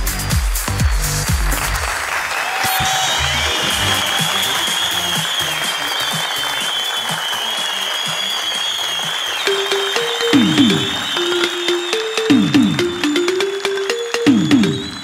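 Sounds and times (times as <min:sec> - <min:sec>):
audience clapping: 0:00.0 - 0:15.0
background music: 0:09.5 - 0:15.0
high wavering tone: 0:09.5 - 0:15.0.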